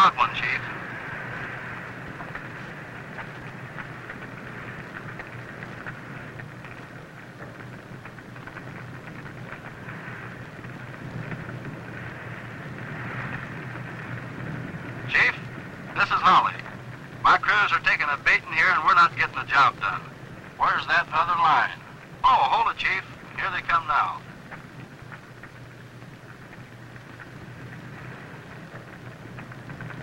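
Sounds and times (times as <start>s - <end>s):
fire crackles: 0.0s - 30.0s
fire rushing: 0.0s - 30.0s.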